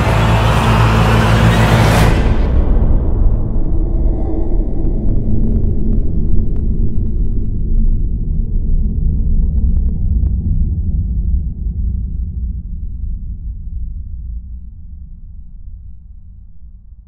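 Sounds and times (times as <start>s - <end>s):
deep loud rumble: 0.0s - 16.1s.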